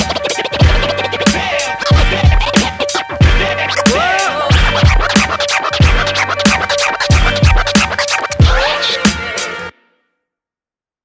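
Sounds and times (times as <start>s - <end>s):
hip hop beat: 0.0s - 9.7s
turntable scratching: 0.0s - 9.7s.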